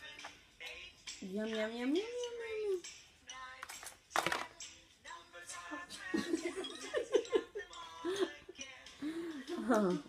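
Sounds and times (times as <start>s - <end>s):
music and voices: 0.0s - 10.0s.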